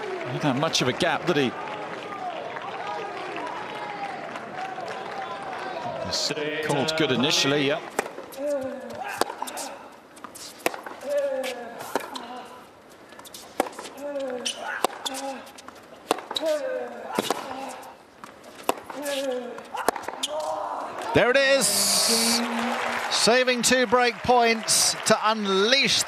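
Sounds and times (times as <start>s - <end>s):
tennis racket hitting ball: 7.9s - 12.2s, 13.2s - 15.4s, 16.0s - 17.8s, 18.6s - 20.4s.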